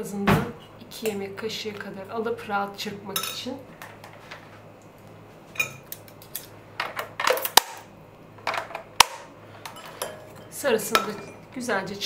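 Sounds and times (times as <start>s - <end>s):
kitchen utensils clinking: 5.6s - 7.6s, 9.6s - 11.5s.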